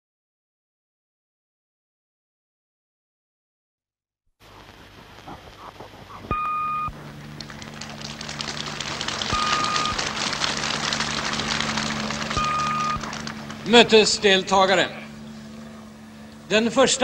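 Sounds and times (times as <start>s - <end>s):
crackling static: 4.4s - 14.4s
low steady hum: 4.4s - 17.0s
electronic beeps: 6.3s - 6.9s, 9.3s - 10.1s, 12.4s - 13.1s
man speaking in old recording: 16.5s - 17.0s.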